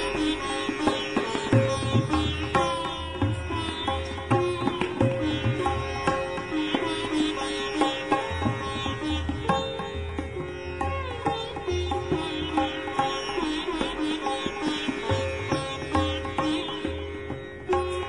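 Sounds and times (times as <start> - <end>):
plucked string melody: 0.0 - 18.0.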